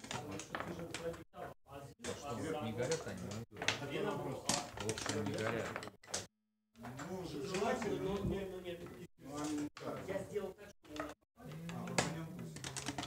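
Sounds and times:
dice and checkers clattering on board: 4.4 - 6.3, 10.9 - 13.0.

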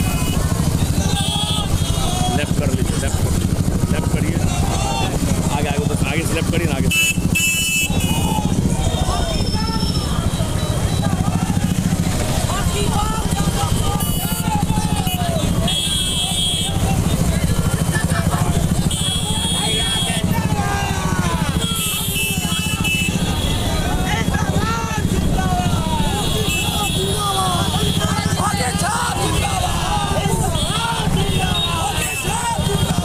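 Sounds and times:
voices shouting: 0.0 - 6.1, 6.7 - 33.0
motorcycle engines running: 0.0 - 33.0.

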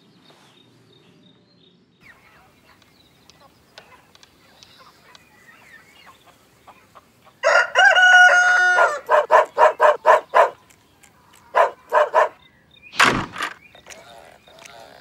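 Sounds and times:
rooster crowing: 7.4 - 10.5.

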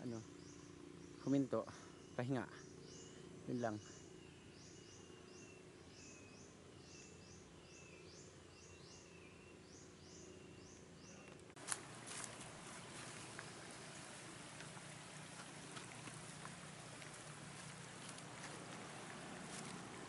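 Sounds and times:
high chirps from forest wildlife: 0.2 - 11.4
footsteps in undergrowth: 11.5 - 20.0
plants brushing against camera: 11.5 - 20.0.

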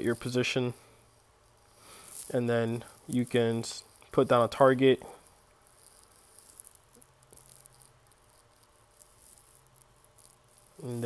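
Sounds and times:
faint low hum and hiss: 0.0 - 11.0.

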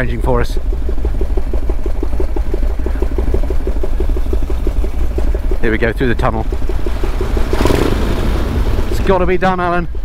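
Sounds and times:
motorcycle engine idling in tunnel: 0.0 - 10.0.

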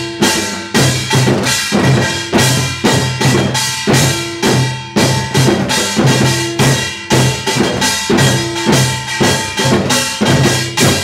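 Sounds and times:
small brass gong struck rhythmically: 0.0 - 11.0.

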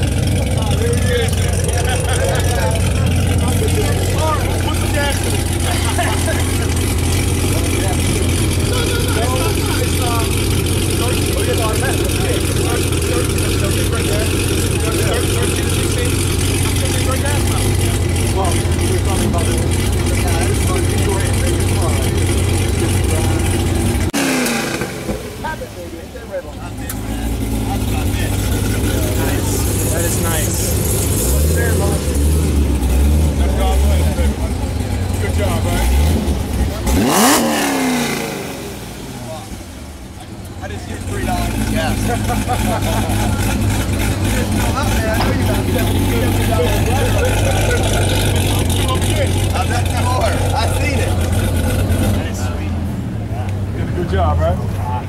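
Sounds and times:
car engine idling: 0.0 - 55.0
engine revving: 0.0 - 55.0.

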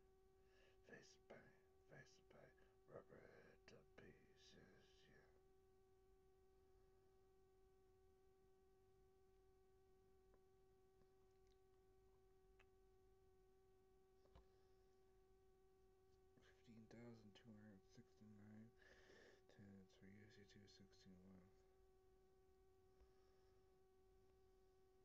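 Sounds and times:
faint steady tone: 0.0 - 25.0.

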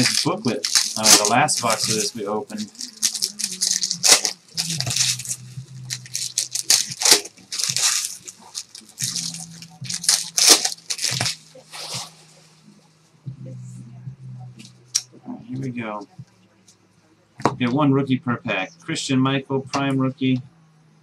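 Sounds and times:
plastic wrapper crinkling and tearing: 0.0 - 12.4.

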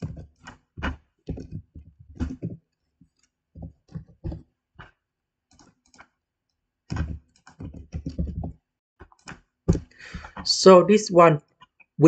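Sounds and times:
keyboard typing: 0.0 - 6.2, 6.9 - 10.5.

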